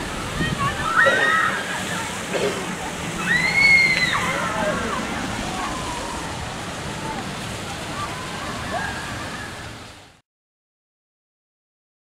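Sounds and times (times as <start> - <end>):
steady rushing noise: 0.0 - 10.2.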